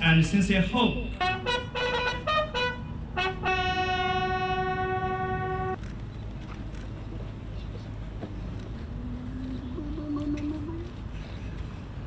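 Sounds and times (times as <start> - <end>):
bugles holding long note: 1.1 - 5.8.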